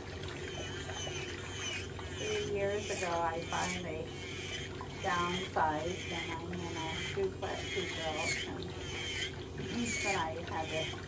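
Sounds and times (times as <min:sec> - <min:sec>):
nail drill grinding toenail: 0:00.5 - 0:11.0.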